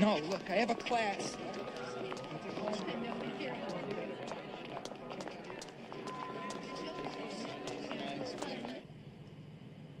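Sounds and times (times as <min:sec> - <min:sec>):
indistinct background voices: 0:00.0 - 0:08.9
steady ambient hum: 0:00.0 - 0:10.0.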